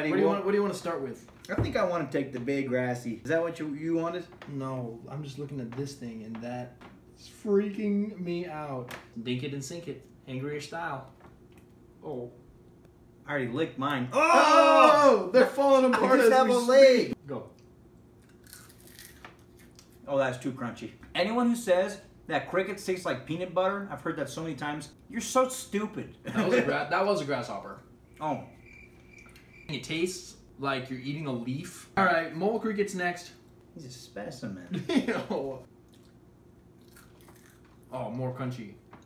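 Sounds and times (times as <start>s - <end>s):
crunching of insects being chewed: 18.2s - 20.0s, 36.8s - 37.9s.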